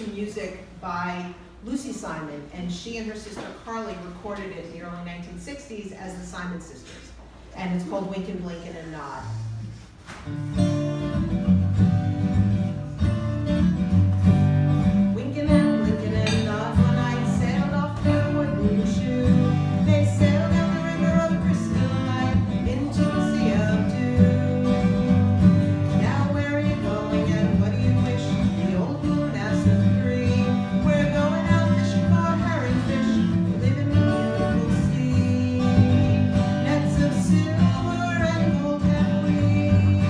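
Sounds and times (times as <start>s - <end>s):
acoustic guitar strumming: 9.3s - 40.0s
person singing: 15.1s - 40.0s.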